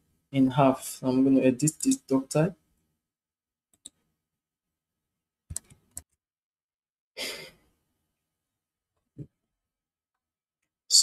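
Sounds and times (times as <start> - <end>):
person sighing: 7.2 - 7.6.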